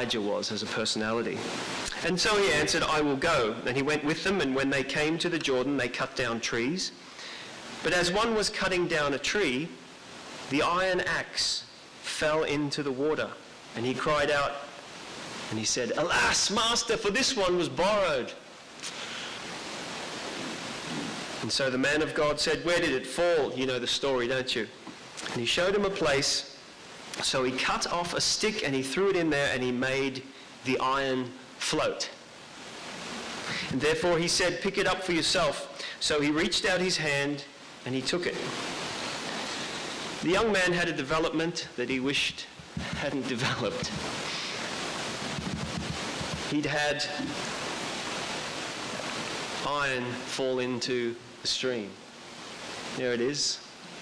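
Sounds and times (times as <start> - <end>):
steady rushing hiss: 0.0 - 54.0.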